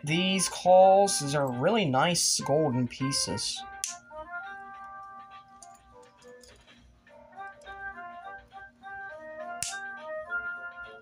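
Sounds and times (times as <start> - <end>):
light background melody: 0.0 - 11.0.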